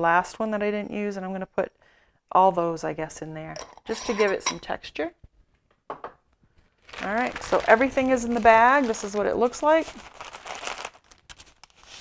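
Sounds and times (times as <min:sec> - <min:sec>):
plastic bag crinkling: 0:06.6 - 0:12.0
dry coffee mix shifting: 0:06.9 - 0:12.0.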